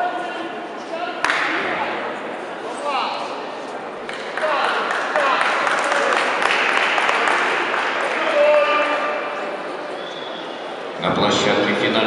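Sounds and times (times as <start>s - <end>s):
indistinct chatter in a hall: 0.0s - 12.0s.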